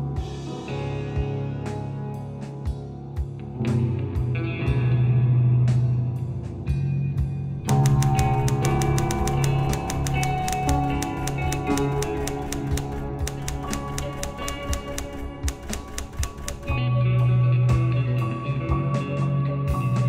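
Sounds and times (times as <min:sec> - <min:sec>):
background music: 0:00.0 - 0:20.0
typewriter key clicks: 0:07.7 - 0:16.8.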